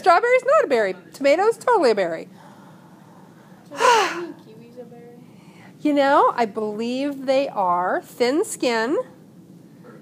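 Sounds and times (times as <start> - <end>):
breathy vocal exclamation: 3.7 - 4.4.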